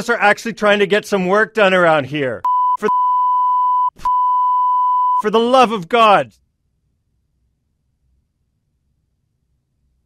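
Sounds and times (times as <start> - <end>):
censor bleep: 2.4 - 5.3.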